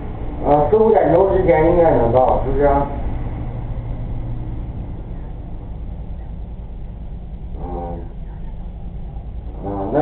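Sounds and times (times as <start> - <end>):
muffled truck rumble: 0.0 - 10.0.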